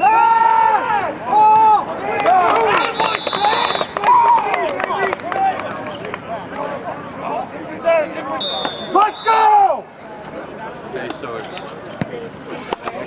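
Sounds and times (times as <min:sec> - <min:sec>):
people shouting and talking: 0:00.0 - 0:13.0
referee's whistle blast: 0:02.7 - 0:04.0, 0:08.4 - 0:09.6.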